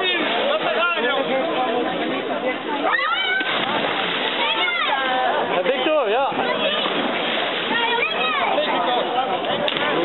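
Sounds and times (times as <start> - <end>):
people chattering: 0.0 - 10.0
water washing: 2.8 - 8.8.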